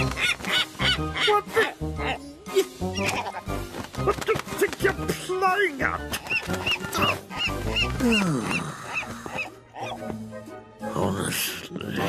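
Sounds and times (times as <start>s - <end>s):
cartoon seagull squawking: 0.0s - 1.7s, 6.1s - 10.0s
background music: 0.0s - 12.0s.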